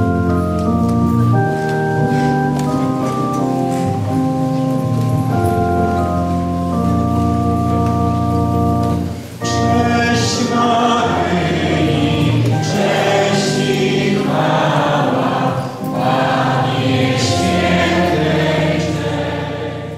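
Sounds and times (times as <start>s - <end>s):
church organ: 0.0s - 19.9s
voices singing a hymn: 9.4s - 19.9s.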